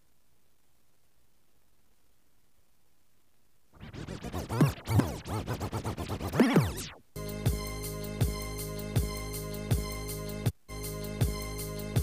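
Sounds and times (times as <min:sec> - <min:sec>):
dj scratching: 0:03.8 - 0:07.0.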